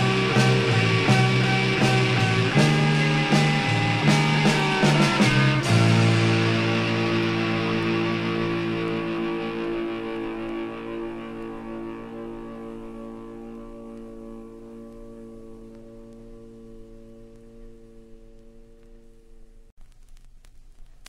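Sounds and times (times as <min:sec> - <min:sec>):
held chord of band music: 0:00.0 - 0:19.4.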